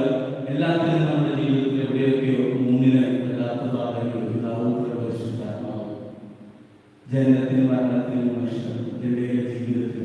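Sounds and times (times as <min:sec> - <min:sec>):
man preaching over loudspeaker: 0:00.0 - 0:06.0, 0:07.1 - 0:10.0.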